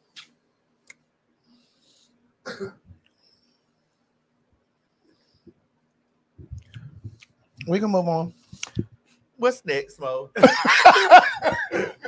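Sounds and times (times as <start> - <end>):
person coughing: 2.5 - 2.9.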